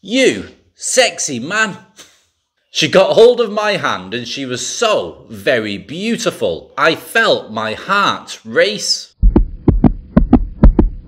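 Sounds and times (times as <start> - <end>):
fast heartbeat thumps: 9.2 - 11.0.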